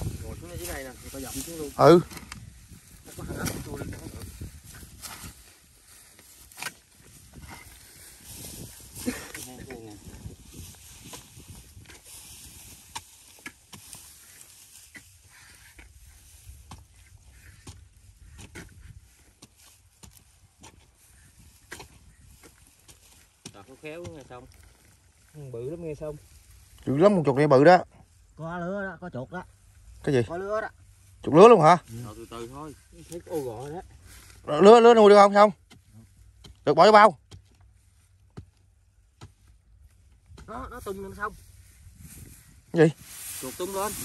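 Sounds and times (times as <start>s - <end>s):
hoes and shovel chopping soil: 0.0s - 25.4s, 33.0s - 41.3s.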